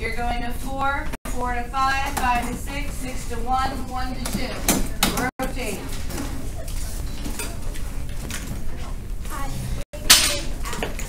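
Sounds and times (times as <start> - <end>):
children talking: 8.7 - 11.0.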